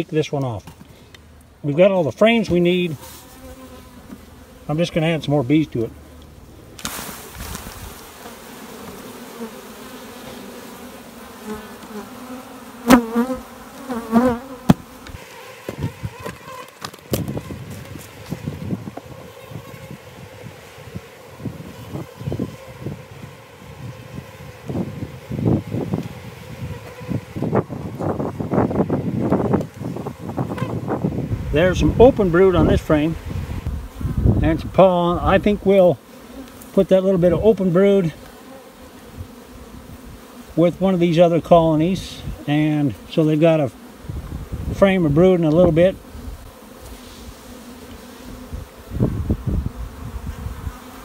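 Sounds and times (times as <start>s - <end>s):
honey bees buzzing: 0.0s - 51.0s.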